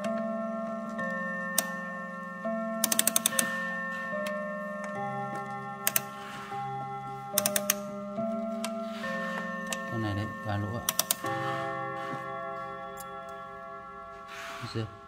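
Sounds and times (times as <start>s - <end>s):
clock chime melody on gongs: 0.0s - 15.0s
clock mechanical ticks: 2.8s - 3.5s, 5.8s - 6.1s, 7.3s - 7.9s, 9.6s - 11.4s.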